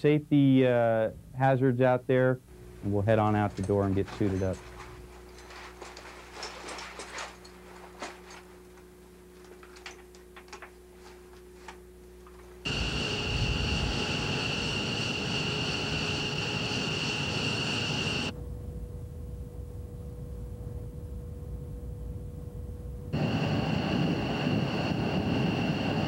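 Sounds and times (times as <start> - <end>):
low room hum: 0.0 - 26.0
gear clicking and rustling: 3.4 - 12.6
jet engine with high whine: 12.2 - 18.4, 23.1 - 26.0
steady drone: 12.6 - 21.2, 22.6 - 26.0.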